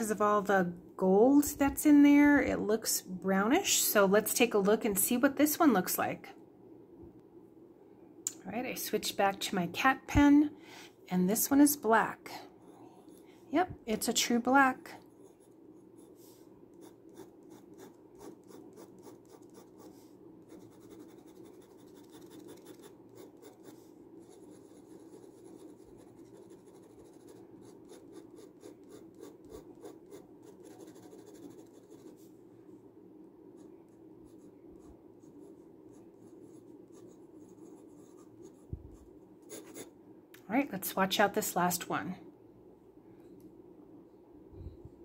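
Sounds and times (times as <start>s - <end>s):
pen nib scratching on paper: 15.1s - 32.2s, 33.6s - 39.9s.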